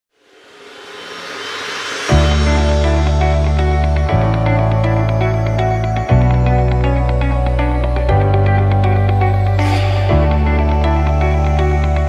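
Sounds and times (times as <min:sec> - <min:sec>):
whooshing riser sound effect: 0:00.1 - 0:04.7.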